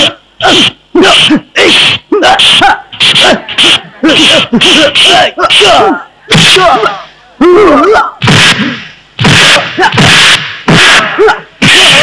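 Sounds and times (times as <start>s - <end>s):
men shouting cries: 0.0s - 12.0s.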